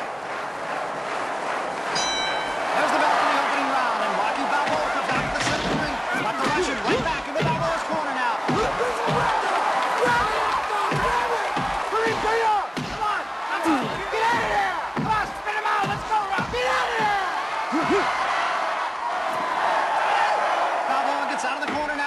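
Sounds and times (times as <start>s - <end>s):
crowd shouting: 0.0s - 22.0s
boxing ring bell: 2.0s - 2.7s
heavy punches thudding: 4.6s - 18.1s.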